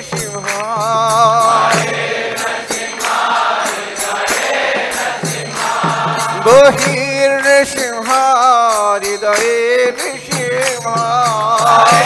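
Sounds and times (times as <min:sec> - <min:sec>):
hand cymbals beat: 0:00.0 - 0:12.0
lead voice singing: 0:00.0 - 0:12.0
chorus singing together: 0:00.5 - 0:07.8, 0:11.2 - 0:12.0.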